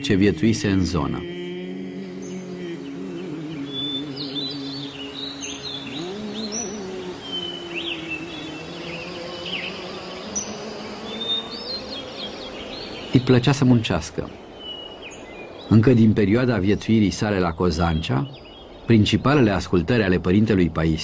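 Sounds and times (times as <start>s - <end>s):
soft background music: 0.0s - 14.2s
birds chirping and twittering: 0.0s - 21.0s.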